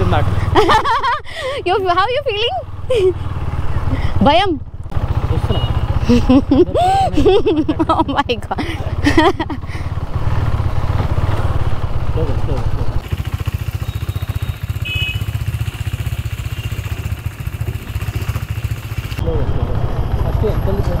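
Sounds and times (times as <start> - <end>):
motorcycle engine low rumble: 0.0 - 21.0.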